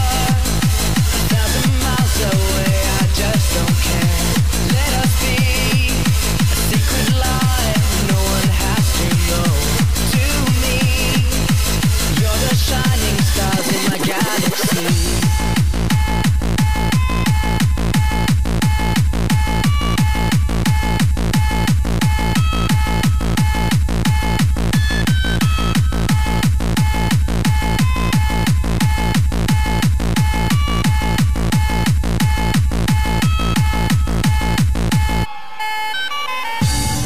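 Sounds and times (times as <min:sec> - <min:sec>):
fast kick drum: 0:00.0 - 0:35.3
hardcore rave music: 0:00.0 - 0:37.0.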